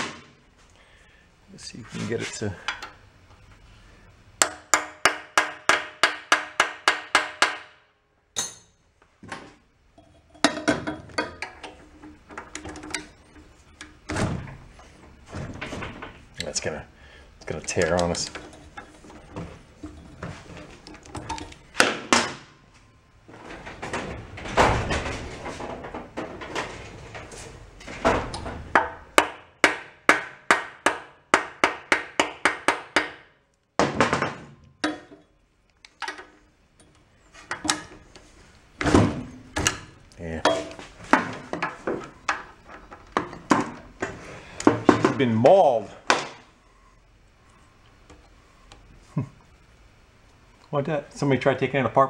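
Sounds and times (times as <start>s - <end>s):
hammer striking metal: 8.4s - 8.8s.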